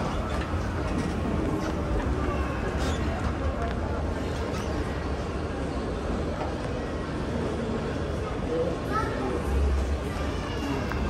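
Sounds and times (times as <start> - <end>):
faint chatter of people: 0.0 - 11.0.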